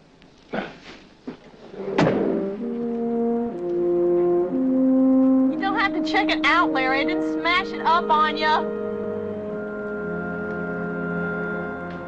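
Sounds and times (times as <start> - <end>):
orchestral brass music: 1.7 - 12.0.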